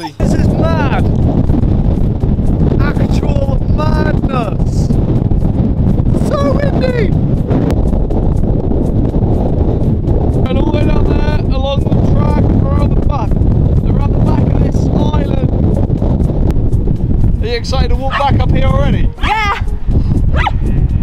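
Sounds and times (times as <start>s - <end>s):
man's voice: 0.0s - 1.2s, 2.8s - 4.9s, 6.1s - 7.2s, 10.4s - 15.6s, 17.4s - 19.7s
strong wind buffeting microphone: 0.0s - 21.0s.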